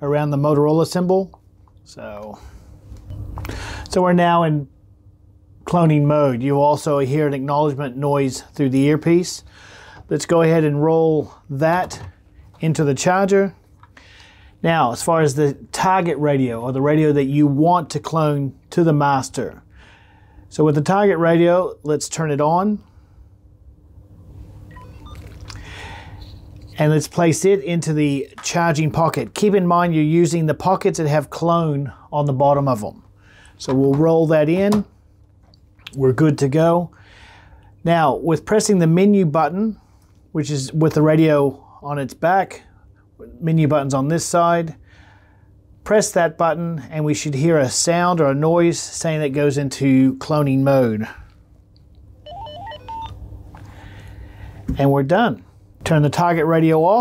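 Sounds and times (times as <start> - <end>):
held beep: 24.7 - 25.3, 52.2 - 53.2
radio electronic power-on tones: 52.3 - 53.2.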